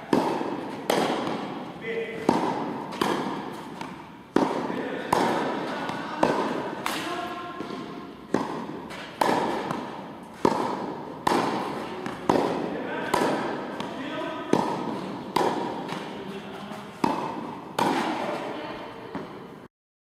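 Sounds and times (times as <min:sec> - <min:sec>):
tennis balls bouncing: 0:00.0 - 0:19.6
racket hitting tennis ball: 0:00.0 - 0:19.7.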